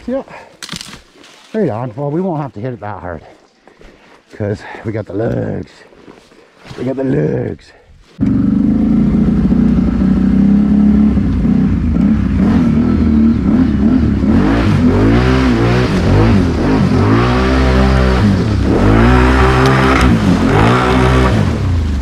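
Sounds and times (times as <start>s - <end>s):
quad bike engine revving: 8.2s - 22.0s.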